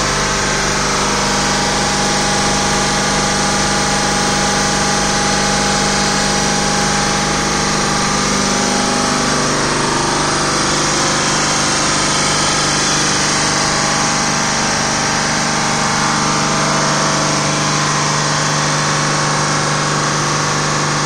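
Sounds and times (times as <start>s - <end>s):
refrigeration compressor running: 0.0s - 21.0s.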